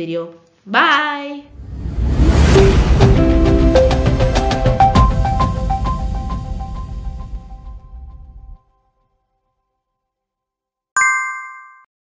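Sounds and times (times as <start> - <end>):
notification bell chime: 11.0 - 11.9.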